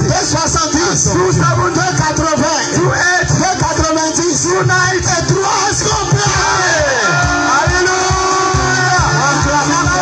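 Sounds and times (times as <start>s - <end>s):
gospel worship music over loudspeakers: 0.0s - 10.0s.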